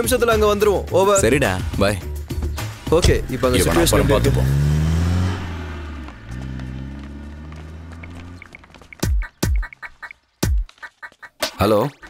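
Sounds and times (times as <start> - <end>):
deep film score booms: 2.6 - 6.4
van engine revving: 2.6 - 9.0.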